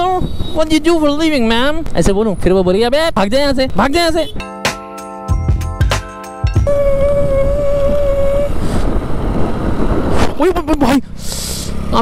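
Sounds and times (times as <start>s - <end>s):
steady high tone: 4.4s - 8.6s
wind on microphone: 6.6s - 10.5s
scooter engine and road rumble: 6.6s - 12.0s.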